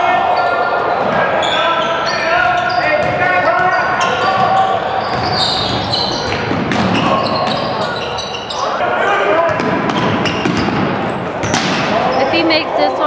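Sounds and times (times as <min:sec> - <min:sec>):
shoe squeaks: 0:01.4 - 0:08.8, 0:10.0 - 0:12.3.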